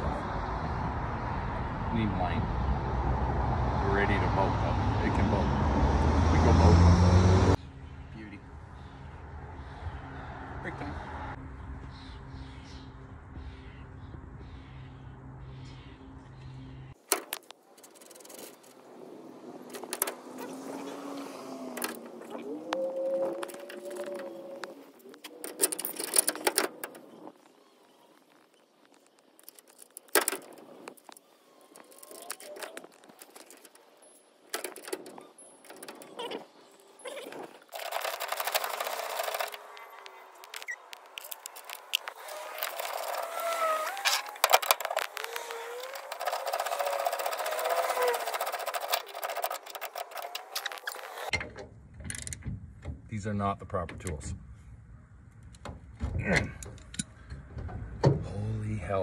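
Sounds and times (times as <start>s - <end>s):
low wordless voice: 3.7s - 7.0s
wrench clicking and scraping metal: 44.1s - 51.3s.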